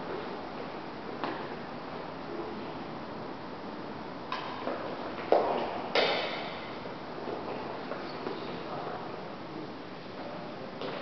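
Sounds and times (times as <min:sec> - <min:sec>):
rackets hitting shuttlecock: 0:04.3 - 0:06.8.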